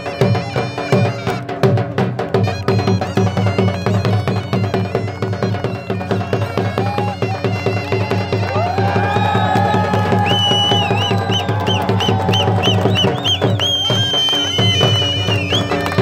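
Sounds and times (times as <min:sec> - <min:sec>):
high folk melody: 0:00.0 - 0:09.4, 0:10.0 - 0:16.0
drum beating fast rhythm: 0:00.0 - 0:16.0.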